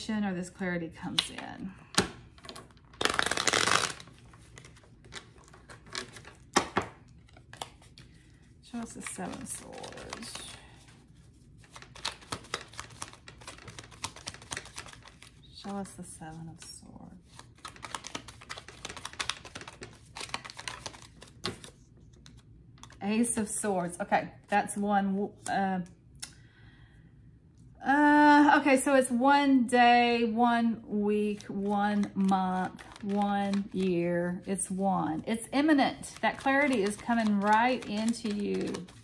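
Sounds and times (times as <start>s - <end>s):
soft card handling: 1.1s - 23.0s, 31.2s - 39.0s
cards riffle shuffling: 2.5s - 15.4s, 17.2s - 23.0s, 31.3s - 33.9s, 35.5s - 39.0s.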